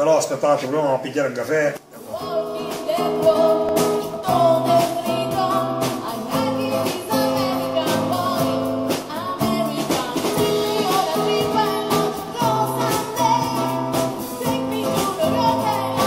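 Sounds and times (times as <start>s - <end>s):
acoustic guitar: 1.8s - 16.0s
drums: 1.8s - 16.0s
woman singing: 2.0s - 16.0s.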